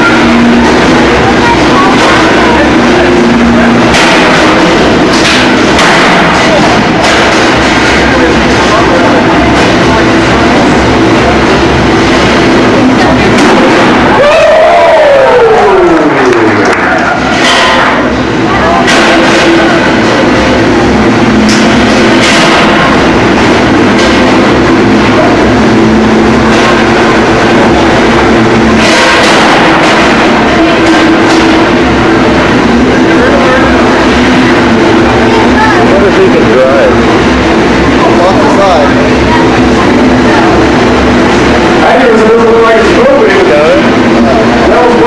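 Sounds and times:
crowd voices: 0:00.0 - 0:45.0
steady machine noise: 0:00.0 - 0:45.0
whine falling in pitch: 0:00.0 - 0:45.0
metal impact clanks: 0:17.2 - 0:33.0.

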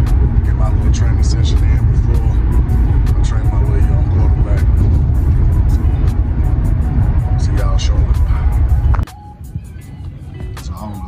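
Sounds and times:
car cabin road rumble: 0:00.0 - 0:11.0
music with beat and vocals: 0:00.0 - 0:11.0.

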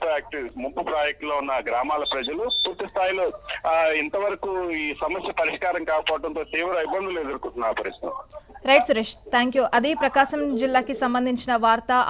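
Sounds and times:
speech over telephone line: 0:00.0 - 0:09.0.

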